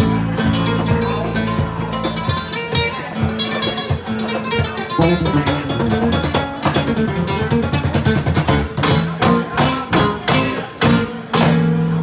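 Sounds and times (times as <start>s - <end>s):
guitars playing plucked lines: 0.0s - 12.0s
hand drum strikes: 0.0s - 12.0s.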